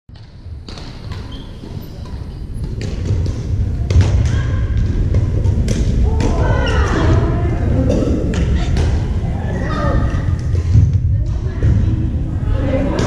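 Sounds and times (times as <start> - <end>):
rackets smacking shuttlecocks: 0.1 - 7.1, 8.2 - 9.2
low rumble of hall: 0.2 - 13.0.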